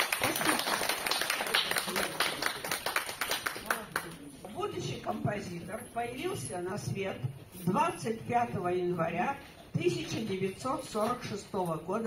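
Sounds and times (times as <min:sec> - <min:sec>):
audience clapping: 0:00.0 - 0:04.3.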